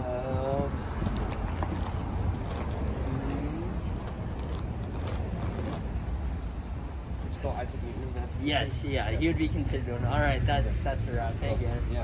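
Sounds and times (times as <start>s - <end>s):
wind buffeting microphone: 0.0s - 8.4s.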